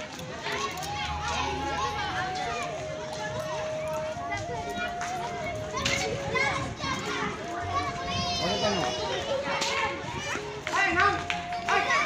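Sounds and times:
children shouting and squealing: 0.1 - 12.0.

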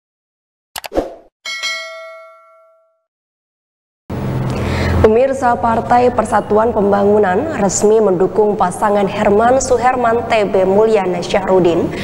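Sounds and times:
notification bell ding: 1.5 - 3.0.

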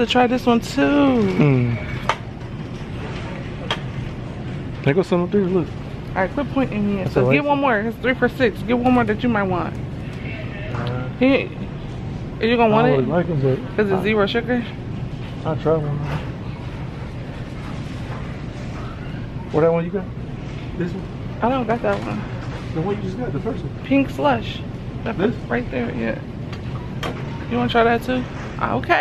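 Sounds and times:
low rumble of store background: 0.0 - 29.0.

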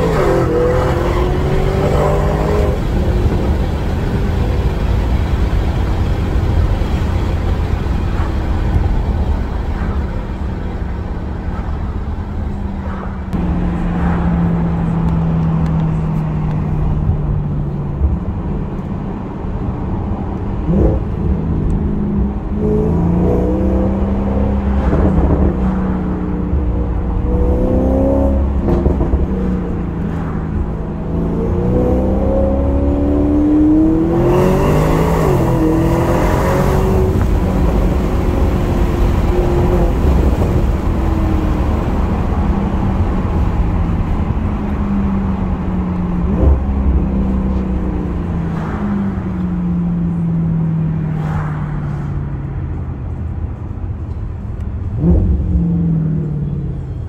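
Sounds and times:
car engine from inside cabin: 0.0 - 57.0
low road rumble: 0.0 - 57.0.

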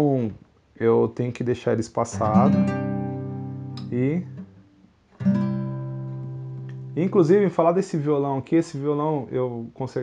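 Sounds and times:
nylon-string guitar chord ringing: 2.3 - 4.6, 5.2 - 7.3.

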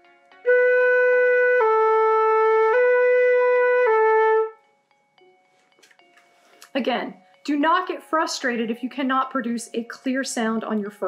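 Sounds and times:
flute playing held notes: 0.4 - 4.6.

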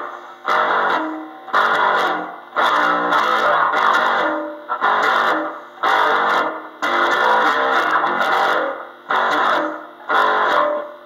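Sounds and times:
electric bass notes: 0.0 - 10.9.

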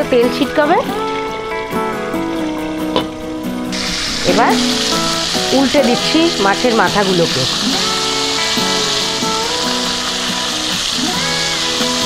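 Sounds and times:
background music with held notes: 0.0 - 12.0
fish frying in oil sizzling: 0.0 - 12.0.

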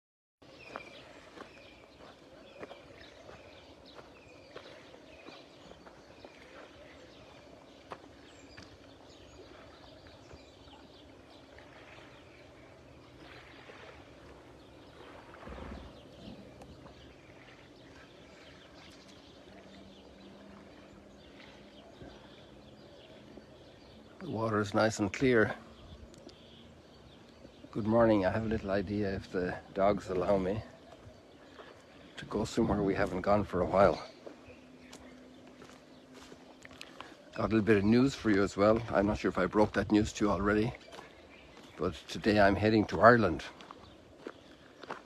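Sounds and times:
bird chirping: 0.4 - 45.0
faint outdoor ambience: 0.4 - 45.0.

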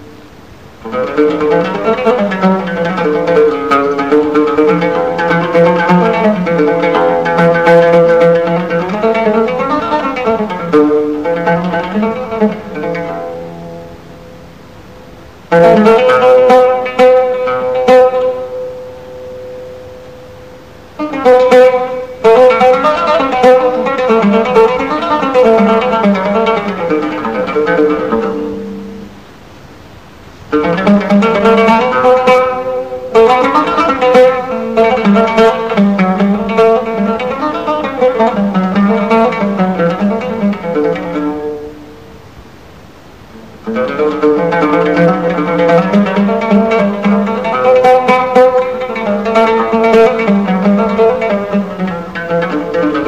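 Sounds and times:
plucked string instrument melody: 0.0 - 53.0.

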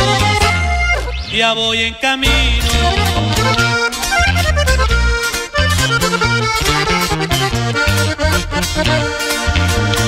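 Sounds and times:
accordion melody: 0.0 - 10.0
stepping bass line: 0.0 - 10.0.

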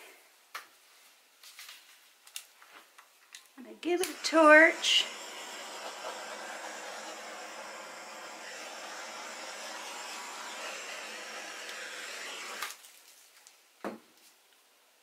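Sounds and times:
torch flame hissing: 3.8 - 12.9.

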